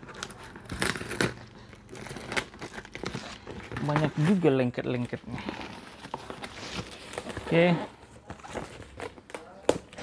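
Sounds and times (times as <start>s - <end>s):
scissors cutting tape and cardboard: 0.0s - 3.2s.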